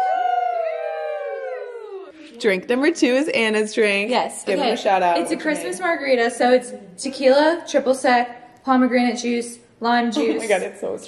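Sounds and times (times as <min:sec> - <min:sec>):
women cheering: 0:00.0 - 0:02.2.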